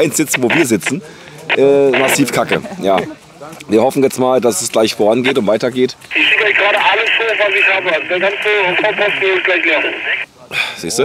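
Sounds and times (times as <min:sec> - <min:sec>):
radio hiss: 0:00.0 - 0:03.2, 0:05.2 - 0:05.5, 0:06.1 - 0:10.3
distorted voice over radio: 0:00.3 - 0:03.1, 0:06.1 - 0:10.2.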